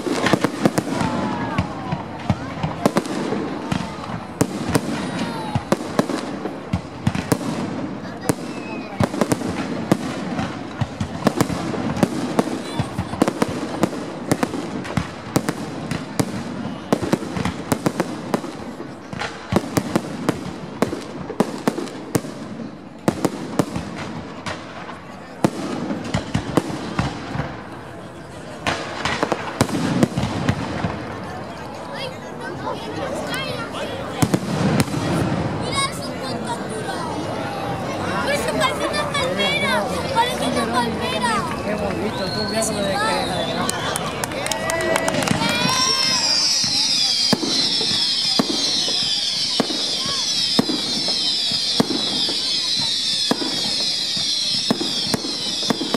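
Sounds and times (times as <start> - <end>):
fireworks bangs and crackles: 0.0 - 55.9.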